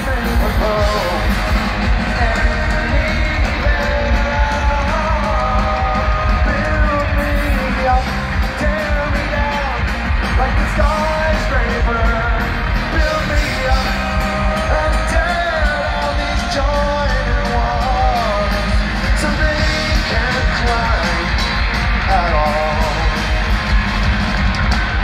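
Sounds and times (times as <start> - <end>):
person singing lead vocal: 0.0 - 23.6
bass guitar: 0.0 - 25.0
drums: 0.0 - 25.0
electric guitars: 0.0 - 25.0.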